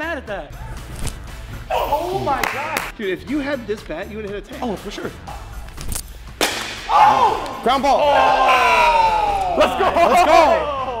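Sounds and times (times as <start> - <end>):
bat cracking ball: 6.4 - 7.6.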